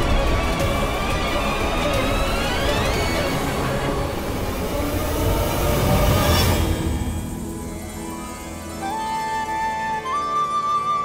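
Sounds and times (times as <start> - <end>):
background score music: 0.0 - 11.0
rumbling roar: 1.4 - 8.1
whoosh: 2.0 - 8.8.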